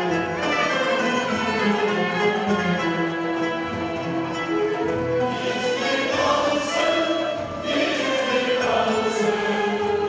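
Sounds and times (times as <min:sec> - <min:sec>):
mixed choir singing: 0:00.4 - 0:02.3, 0:05.1 - 0:10.0.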